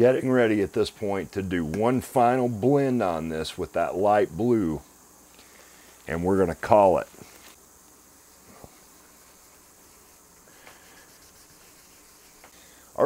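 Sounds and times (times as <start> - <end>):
faint room tone hiss: 0.0 - 13.0.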